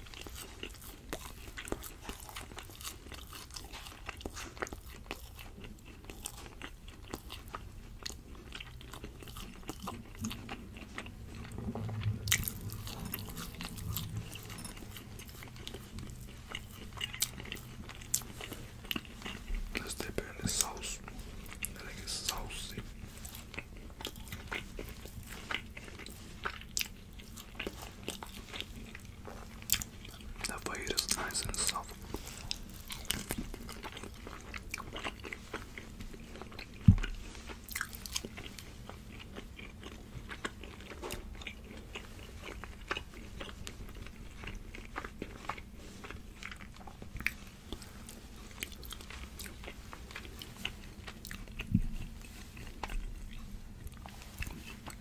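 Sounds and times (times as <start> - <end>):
chewing and biting meat: 0.0 - 55.0.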